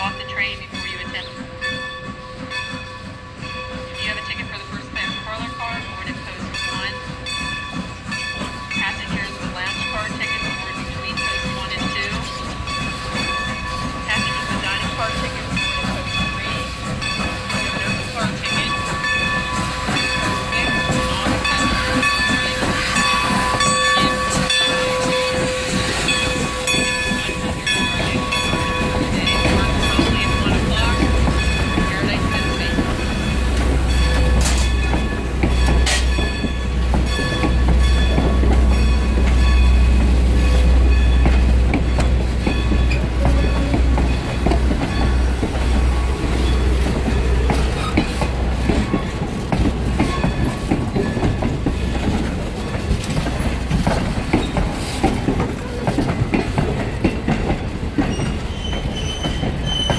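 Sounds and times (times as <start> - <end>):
steam train rolling in: 0.0 - 59.9
wheels rumbling on rails: 0.0 - 59.9.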